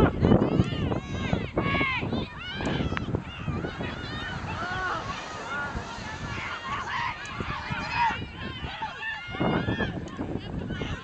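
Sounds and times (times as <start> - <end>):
voices shouting and calling: 0.0 - 11.0
wind rumble on microphone: 0.0 - 11.0.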